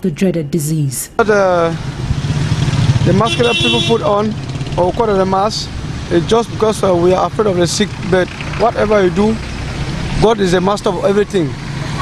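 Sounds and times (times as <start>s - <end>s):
car engine rumbling: 1.2s - 12.0s
man speaking hesitantly: 3.1s - 9.4s.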